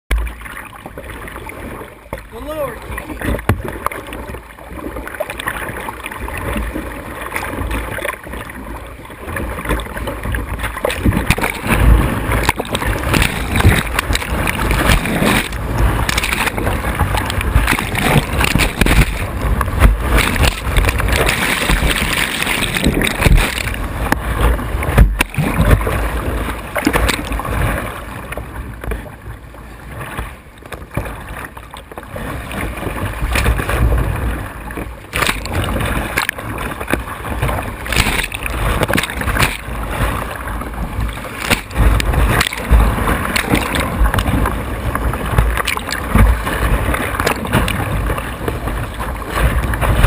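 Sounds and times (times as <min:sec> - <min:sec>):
water slapping: 0:00.1 - 0:50.0
whitewater rapids rushing: 0:10.7 - 0:27.5.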